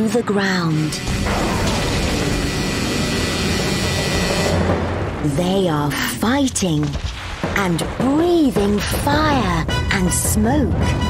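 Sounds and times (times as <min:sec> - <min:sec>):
background music: 0:00.0 - 0:11.0
booming rushing roar: 0:01.0 - 0:06.2.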